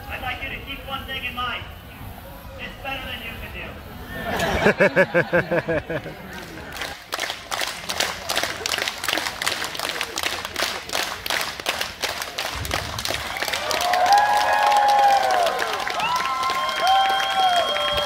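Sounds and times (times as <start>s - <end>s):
audience clapping: 6.3s - 18.0s
crowd cheering and whooping: 13.0s - 18.0s.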